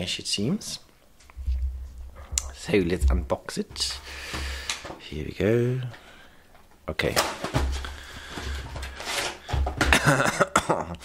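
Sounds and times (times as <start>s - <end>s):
cardboard rustling and scraping: 7.3s - 10.0s.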